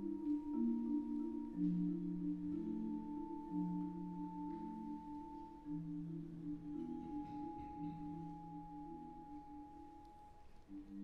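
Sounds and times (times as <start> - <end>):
soft low held notes: 0.0 - 11.0.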